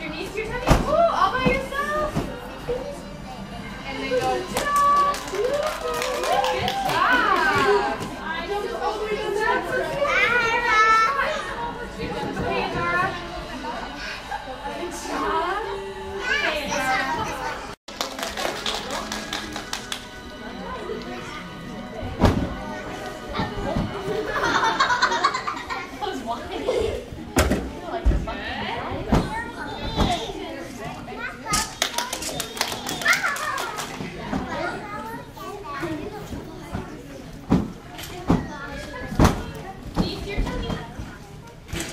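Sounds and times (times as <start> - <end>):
young children chattering: 7.2 - 17.8, 20.2 - 41.9.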